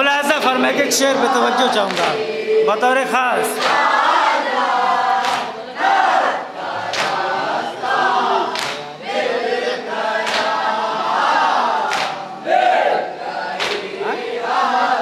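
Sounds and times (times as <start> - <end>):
men chanting a lament: 0.0 - 15.0
hands slapping chests: 5.2 - 5.5, 6.9 - 7.2, 8.5 - 8.8, 10.2 - 10.6, 11.9 - 12.2, 13.6 - 13.9.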